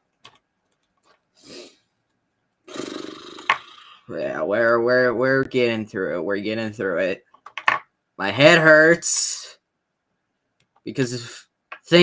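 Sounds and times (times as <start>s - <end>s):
person breathing out: 1.4s - 1.8s.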